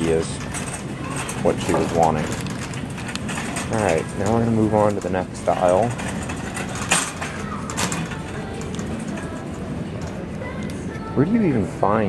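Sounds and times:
shopping cart rattling on floor: 0.0 - 10.3
shopping cart sharp clacks: 0.0 - 10.8.

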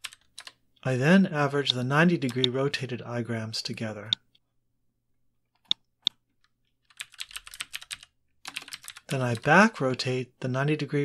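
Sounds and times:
computer keyboard typing: 0.0 - 0.6, 1.6 - 2.6, 5.6 - 9.6.

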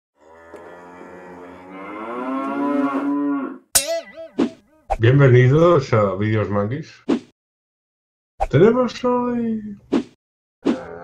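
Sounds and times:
cow mooing: 0.2 - 3.7
short sharp pitch-bending sound: 3.8 - 5.0.

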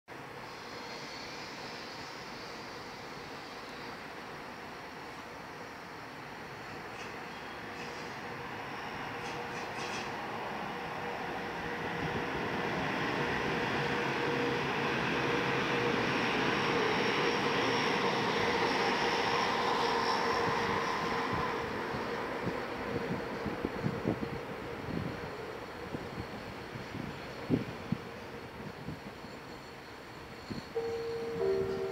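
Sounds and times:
train wheels rumbling on rail: 6.3 - 31.9.

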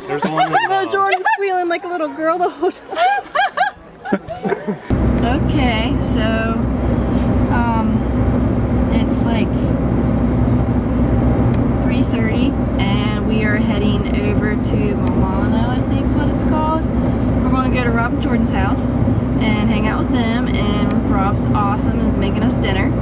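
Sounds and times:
woman talking: 0.4 - 3.1, 5.2 - 6.7, 7.4 - 8.1, 8.9 - 9.7, 11.8 - 23.0
car road and engine noise: 4.9 - 23.0.

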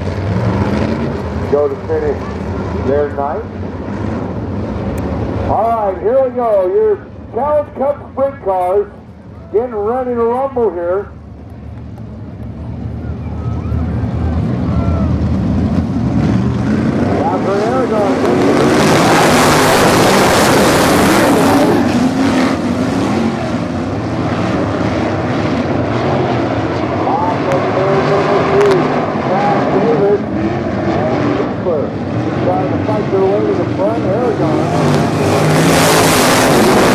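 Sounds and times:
race car engines revving: 0.0 - 36.9.

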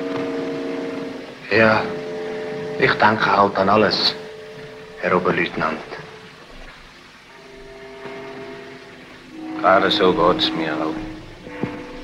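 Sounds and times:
faint chord of steady tones: 0.0 - 12.0.

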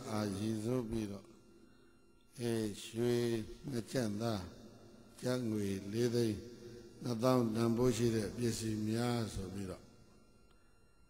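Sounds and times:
man speaking into microphone: 0.0 - 1.4, 2.3 - 9.9.

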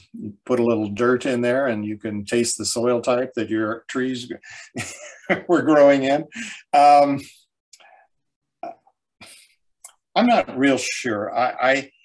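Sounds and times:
breath: 6.3 - 6.7.

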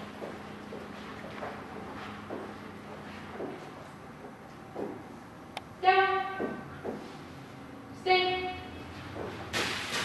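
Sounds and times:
running footsteps on padded floor: 0.0 - 5.1, 6.3 - 7.3
woman giving commands: 5.8 - 6.6, 8.0 - 8.8.

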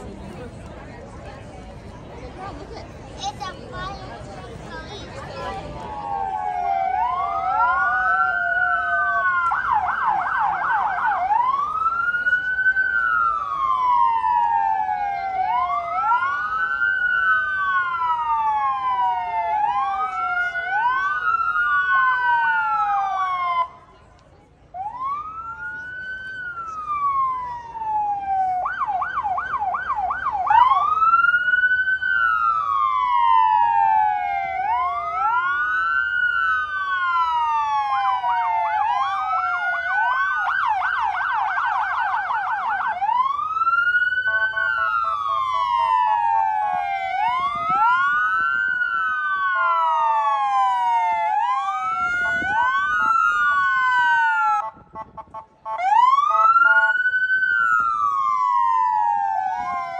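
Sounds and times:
police sirens wailing: 3.2 - 59.9.

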